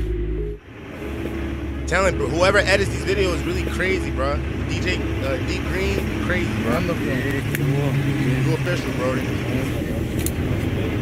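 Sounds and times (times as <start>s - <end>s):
low rumble of vehicles: 0.0s - 11.0s.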